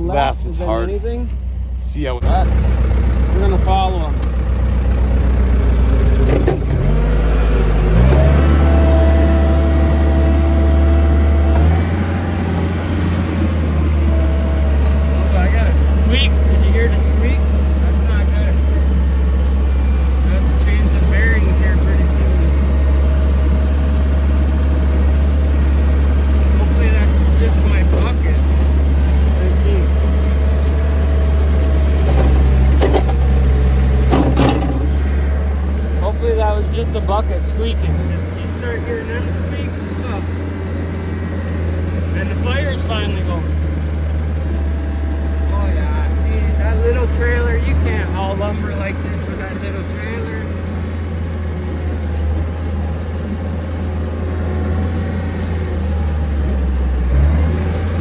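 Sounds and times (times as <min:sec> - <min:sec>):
loader engine running hard: 0:00.0 - 0:58.0
short high squeaks: 0:08.1 - 0:14.5, 0:24.5 - 0:27.3.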